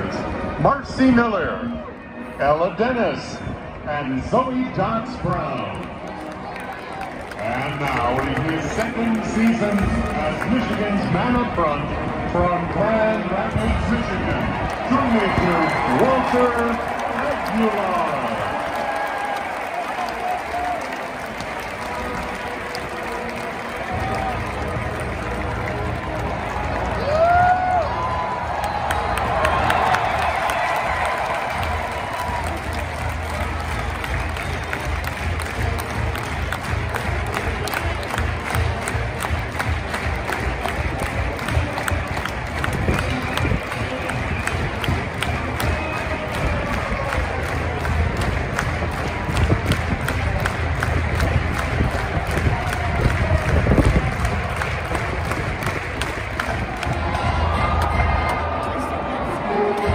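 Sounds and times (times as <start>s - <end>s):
stadium crowd cheering: 0.0s - 59.9s.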